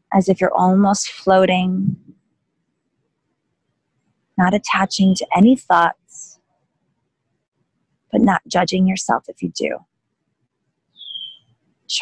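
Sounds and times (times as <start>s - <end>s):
bird whistled note: 11.0s - 11.5s.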